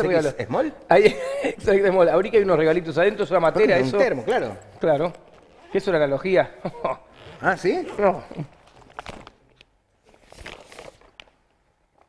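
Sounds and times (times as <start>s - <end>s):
gift bag rustling: 7.1s - 11.4s.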